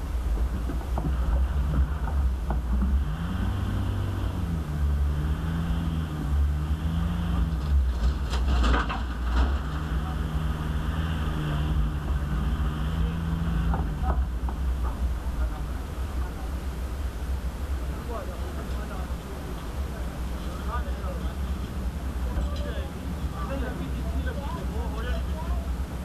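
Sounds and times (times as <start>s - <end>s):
diesel engine at low revs: 0.0s - 26.0s
knocks and rattles: 0.2s - 3.9s, 7.5s - 10.3s.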